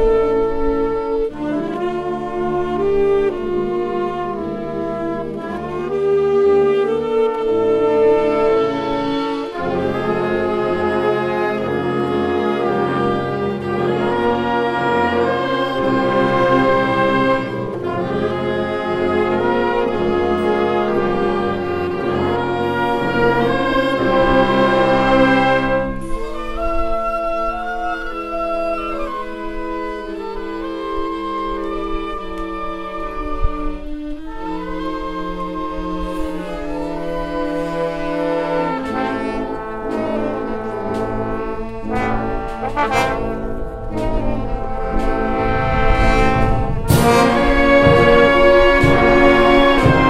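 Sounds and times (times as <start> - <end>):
wind band playing: 0.0 - 50.0.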